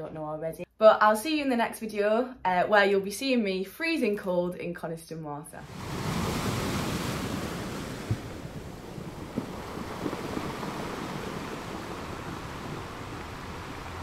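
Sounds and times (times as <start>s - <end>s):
ocean waves breaking: 5.6s - 14.0s.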